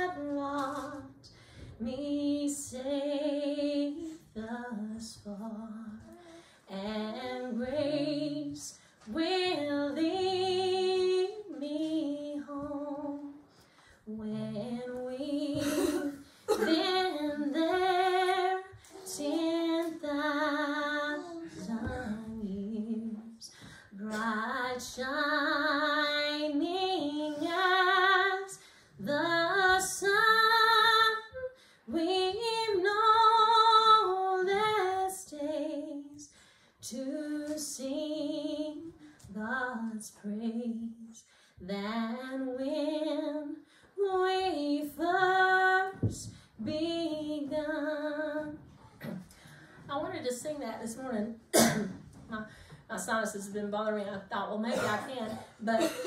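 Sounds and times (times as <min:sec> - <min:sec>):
woman singing a hymn: 0:00.0 - 0:48.8, 0:49.8 - 0:56.0.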